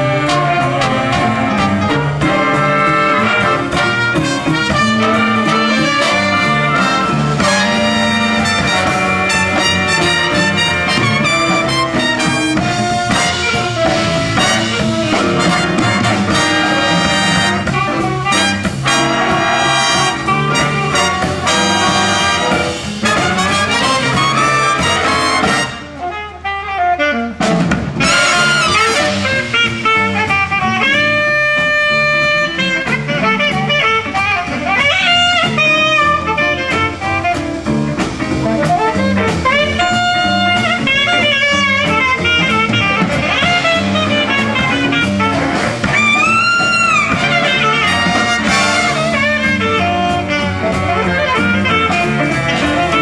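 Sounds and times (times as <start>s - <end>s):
jazz big band playing swing: 0.0s - 53.0s
saxophone solo: 0.0s - 53.0s.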